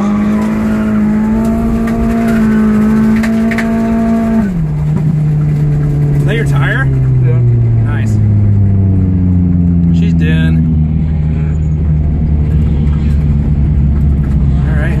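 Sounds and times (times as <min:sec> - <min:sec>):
car engine from inside cabin: 0:00.0 - 0:15.0.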